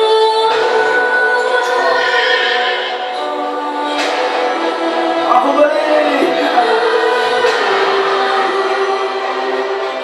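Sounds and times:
voices singing long notes: 0.0s - 10.0s.

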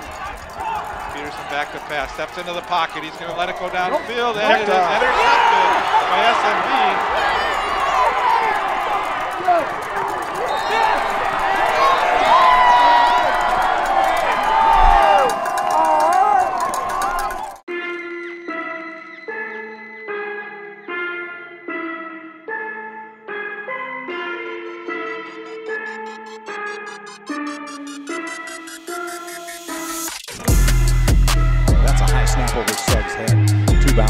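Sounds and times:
crowd cheering and yelling: 0.0s - 17.7s, 30.3s - 34.0s
electronic music with synth line: 17.7s - 34.0s.

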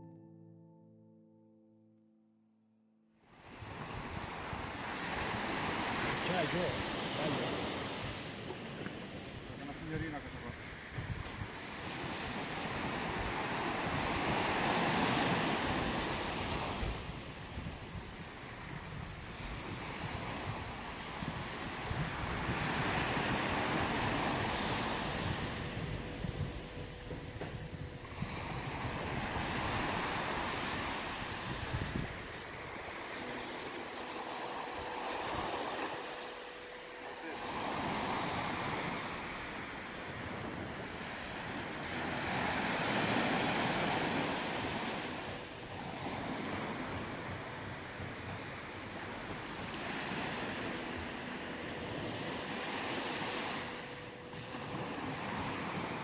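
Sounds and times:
small waves breaking on sand: 3.3s - 56.0s
wind buffeting microphone: 3.4s - 36.6s, 37.4s - 56.0s.

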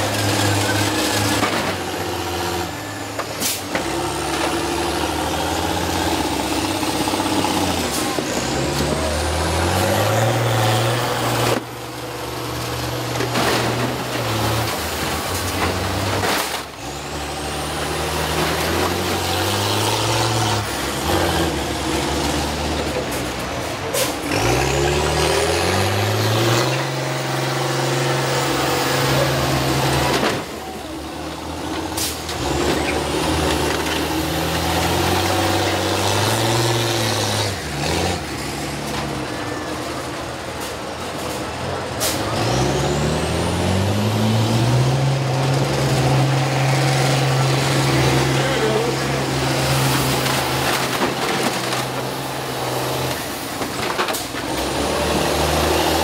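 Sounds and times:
bus engines revving: 0.0s - 56.0s.

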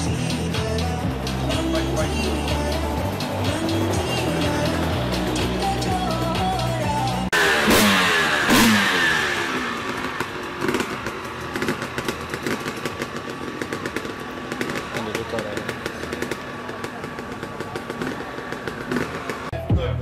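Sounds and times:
motorcycle engines revving and popping: 0.0s - 19.6s
people talking: 14.9s - 18.3s.

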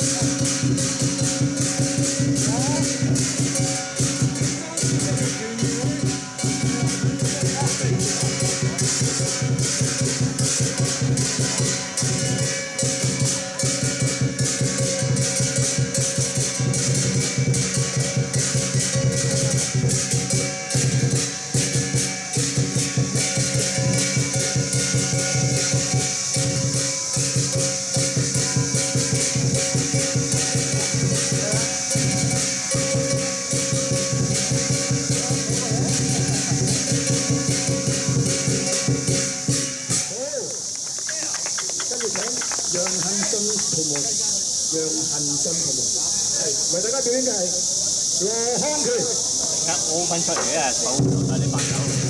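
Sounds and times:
large drum beating: 0.0s - 40.8s, 48.2s - 52.0s
clashing cymbals: 0.0s - 52.0s.

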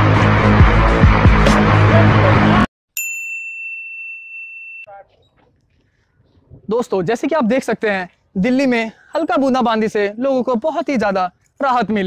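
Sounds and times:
bright bell ding: 3.0s - 4.9s.

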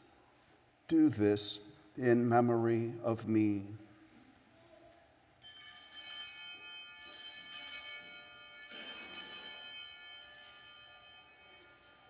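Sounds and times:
altar bells jingling: 5.4s - 12.0s.

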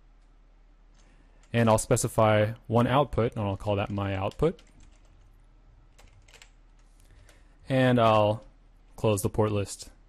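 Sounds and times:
computer keyboard typing: 3.6s - 7.4s.

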